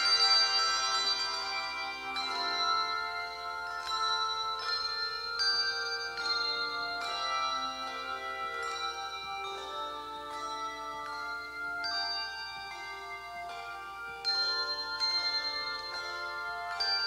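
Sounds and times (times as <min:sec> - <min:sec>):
handbell choir playing chords: 0:00.0 - 0:17.0.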